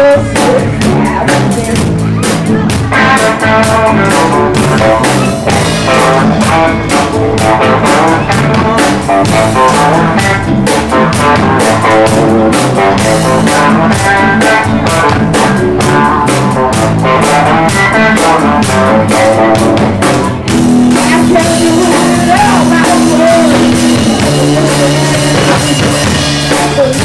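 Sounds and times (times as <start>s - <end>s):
bass guitar: 0.0s - 27.0s
drum kit steady beat: 0.0s - 27.0s
electric guitars: 0.0s - 27.0s.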